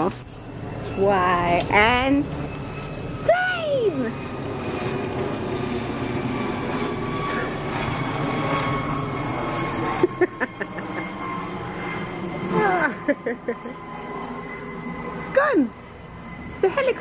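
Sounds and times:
helicopter drone overhead: 0.0s - 17.0s
person laughing: 9.9s - 11.2s, 12.6s - 13.8s.

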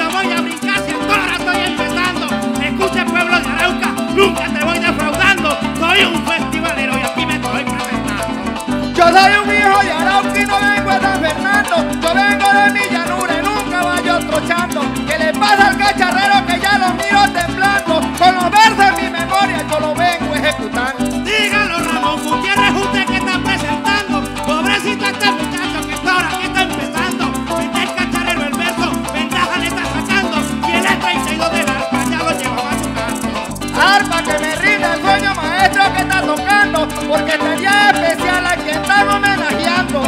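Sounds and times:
maracas rhythm: 0.0s - 40.0s
plucked harp runs: 0.0s - 40.0s.

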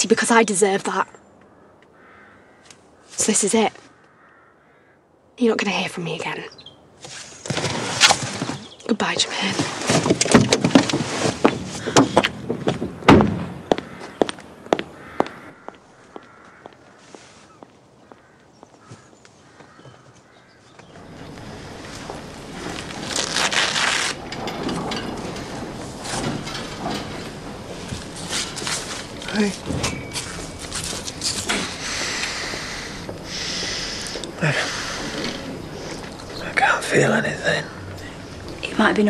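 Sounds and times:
sharp knocks: 11.5s - 14.4s.

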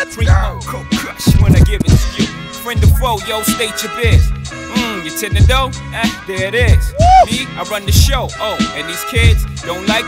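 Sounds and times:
rapping over a beat: 0.0s - 10.0s
heavy kick drum beat: 0.2s - 2.2s, 2.8s - 3.2s, 4.1s - 4.5s, 5.3s - 5.8s, 6.6s - 8.3s.

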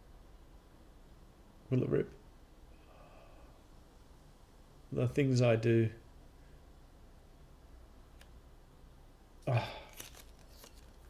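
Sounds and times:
faint handling sounds: 9.7s - 11.0s
papery rustle of peeled sheet: 9.8s - 11.0s.

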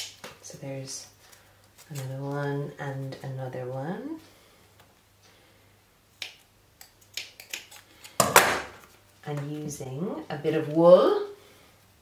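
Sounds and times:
scissors clicking: 6.2s - 8.2s.

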